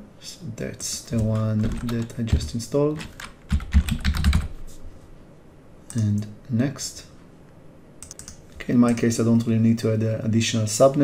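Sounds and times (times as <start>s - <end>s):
keyboard typing: 1.1s - 4.6s, 8.0s - 9.0s.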